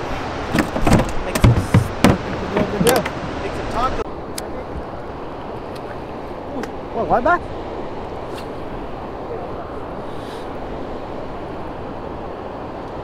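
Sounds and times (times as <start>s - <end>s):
water rushing: 0.0s - 13.0s
wind: 0.0s - 13.0s
thumps in plastic cooler: 0.6s - 3.1s.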